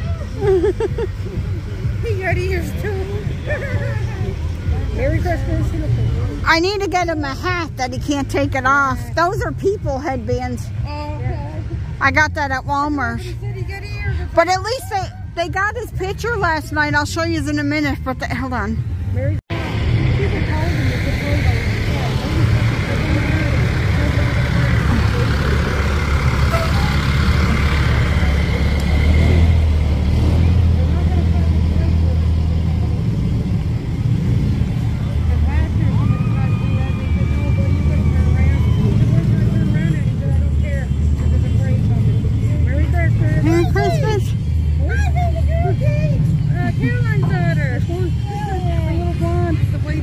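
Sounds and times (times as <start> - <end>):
truck engine rumble: 0.0 - 50.0
voices of onlookers: 0.0 - 50.0.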